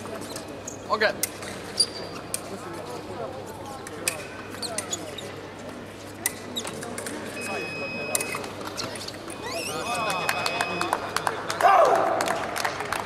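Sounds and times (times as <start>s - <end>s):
murmur of voices: 0.0s - 13.0s
fencer shouting: 11.6s - 12.3s.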